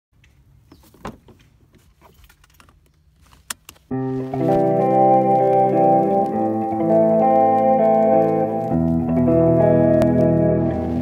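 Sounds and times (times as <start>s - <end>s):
seatbelt webbing rustling: 0.7s - 9.0s
seatbelt buckle click: 2.2s - 3.9s
music: 3.9s - 11.0s.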